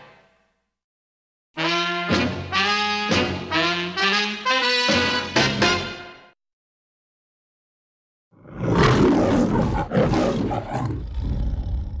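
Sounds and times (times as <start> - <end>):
lion roaring: 8.4 - 12.0.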